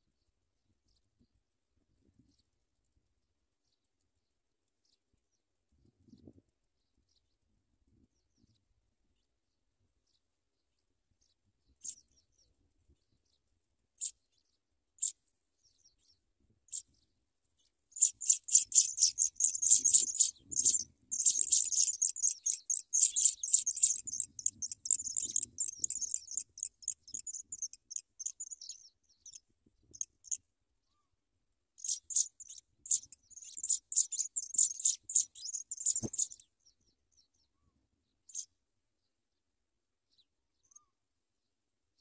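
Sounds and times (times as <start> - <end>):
nestlings begging calls: 17.9 - 30.4, 31.8 - 36.4.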